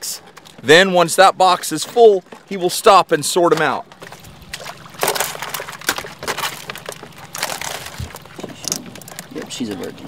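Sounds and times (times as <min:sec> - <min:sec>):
crab shells clicking and scraping: 0:03.9 - 0:09.7.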